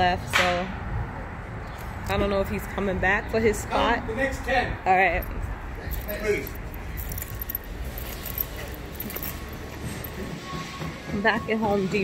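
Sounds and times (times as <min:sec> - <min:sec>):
light clinks and jingles: 0:05.0 - 0:10.3.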